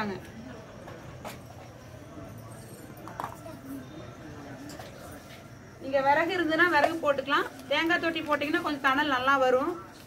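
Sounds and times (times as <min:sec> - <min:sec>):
faint low voices: 0:00.0 - 0:10.0.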